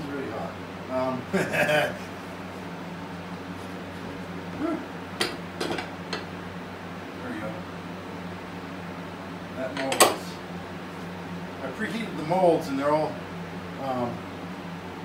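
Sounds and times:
steady low hum: 0.0 - 15.0.

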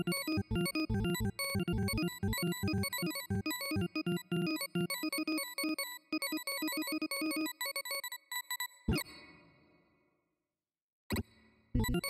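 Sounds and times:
short electronic beeps: 11.8 - 12.0.

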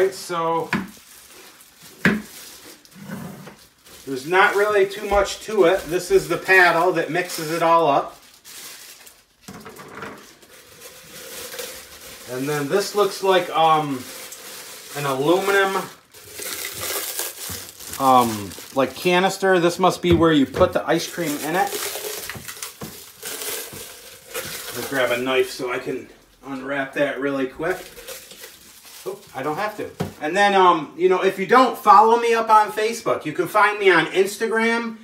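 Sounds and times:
plastic wrap crinkling: 0.0 - 30.3.

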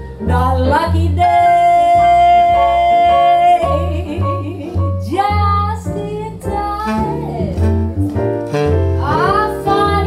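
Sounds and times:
grand piano accompaniment: 0.0 - 10.0
woman singing: 0.2 - 7.7, 9.0 - 10.0.

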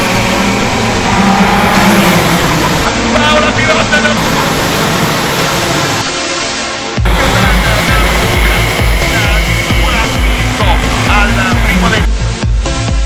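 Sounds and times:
racing kart engines accelerating: 0.0 - 6.3, 7.0 - 12.1.

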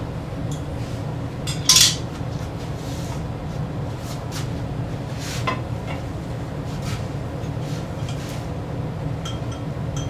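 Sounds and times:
glassware clinking: 9.2 - 10.0.

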